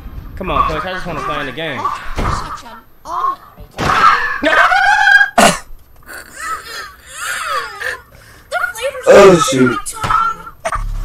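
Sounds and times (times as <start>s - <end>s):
person whimpering cries: 4.4s - 8.1s
person yelling: 8.6s - 10.2s.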